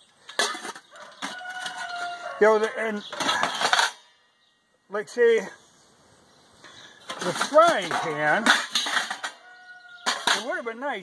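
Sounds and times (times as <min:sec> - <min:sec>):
rooster crowing: 0:00.9 - 0:02.6, 0:09.3 - 0:10.1
metal cookware clink: 0:07.1 - 0:10.7.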